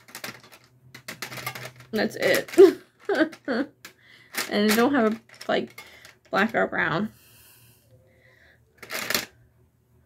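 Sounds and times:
woman talking: 1.9s - 3.6s, 4.4s - 7.2s
woman breathing in: 7.2s - 8.7s.

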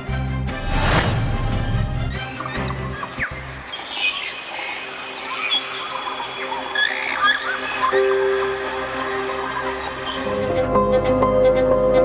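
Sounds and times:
theme music: 0.0s - 3.5s
birds chirping: 2.1s - 10.7s.

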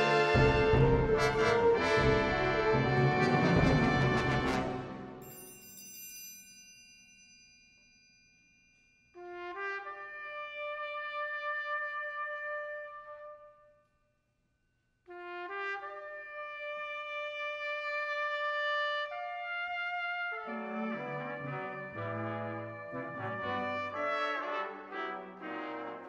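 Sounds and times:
trumpets building sustained chord: 20.4s - 26.0s.

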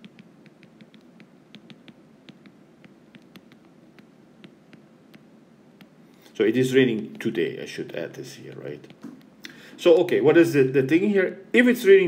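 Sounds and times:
stylus tapping on glass screen: 0.0s - 6.0s.

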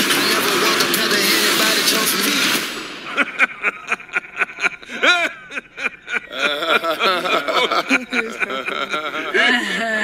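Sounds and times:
song with held sung word: 0.0s - 3.2s.

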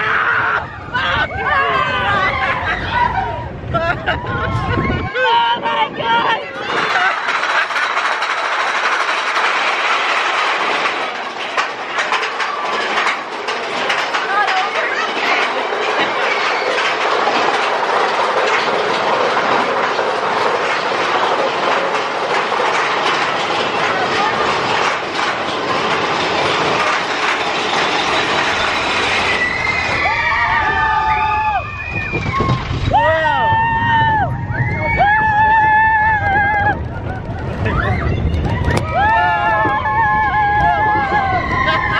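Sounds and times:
roller coaster clattering on track: 0.0s - 41.9s.

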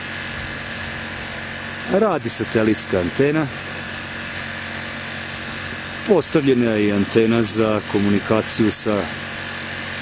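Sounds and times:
portable generator running: 0.0s - 10.0s.

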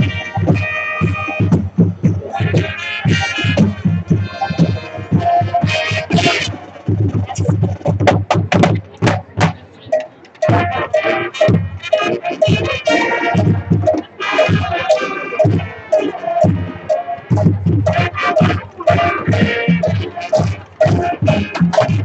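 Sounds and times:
marching band playing: 0.0s - 22.0s.

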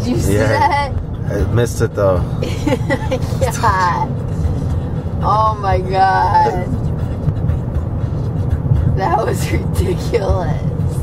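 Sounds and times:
passenger laughing: 0.0s - 4.2s, 9.1s - 10.6s
car cabin road rumble: 0.0s - 11.0s.

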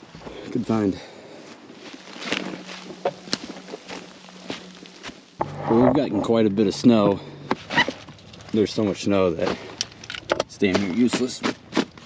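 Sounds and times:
footsteps crunching dry leaves: 1.3s - 5.4s
rustling: 1.5s - 6.3s.

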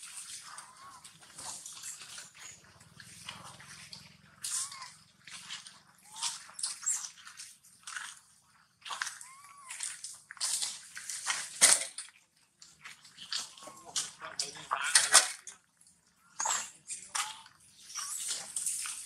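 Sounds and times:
macaques squeaky calls: 0.4s - 3.6s, 4.3s - 5.0s, 6.0s - 7.1s, 9.0s - 9.9s.

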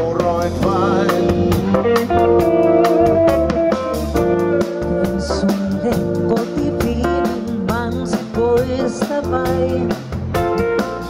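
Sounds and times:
electric guitar: 0.0s - 11.0s
keyboards: 0.0s - 11.0s
steady drum beat: 0.0s - 11.0s.

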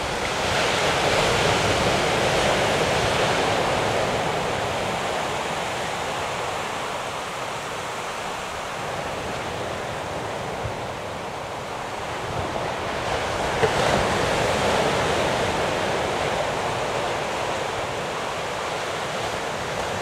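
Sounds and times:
waves breaking on beach: 0.0s - 20.0s.

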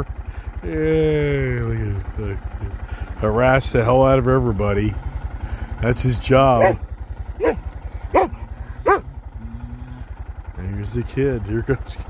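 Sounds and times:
man calling out: 6.6s - 6.8s.

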